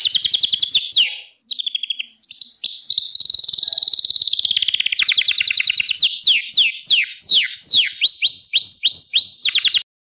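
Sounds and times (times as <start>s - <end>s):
canary singing trills: 0.0s - 9.9s.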